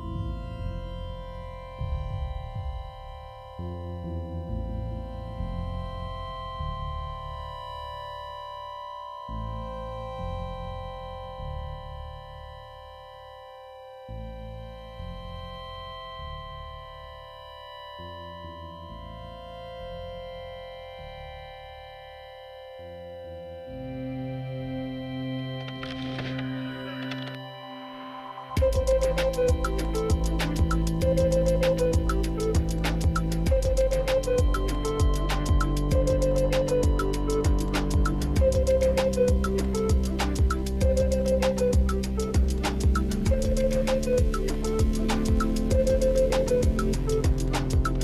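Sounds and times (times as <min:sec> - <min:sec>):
deep bass: 0:00.0 - 0:08.6, 0:09.2 - 0:13.0, 0:14.1 - 0:17.4, 0:28.6 - 0:48.0
held synthesizer chords: 0:00.0 - 0:25.6, 0:27.4 - 0:48.0.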